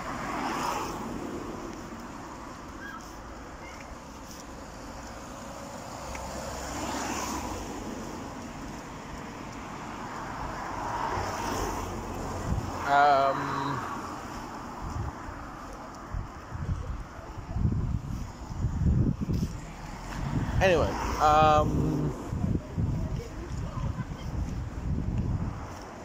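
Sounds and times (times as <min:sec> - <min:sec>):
cars passing: 0:00.0 - 0:26.0
wind on microphone: 0:12.2 - 0:12.8, 0:14.7 - 0:25.9.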